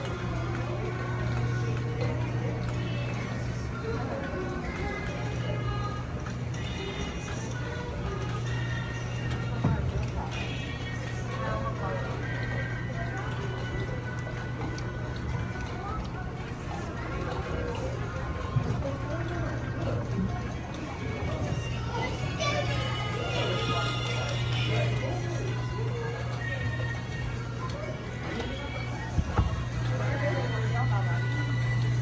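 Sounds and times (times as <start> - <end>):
faint music: 0.0 - 32.0
low machinery hum: 0.0 - 32.0
passengers' voices: 0.0 - 32.0.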